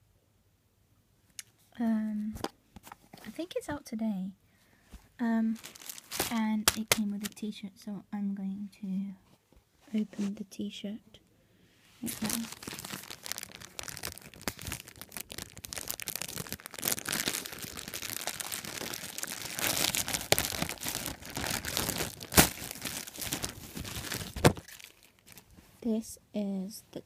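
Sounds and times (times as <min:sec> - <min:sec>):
plastic bag crinkling and tearing: 0:05.4 - 0:07.4, 0:12.0 - 0:25.6
sharp cracks of plastic: 0:21.8 - 0:22.7.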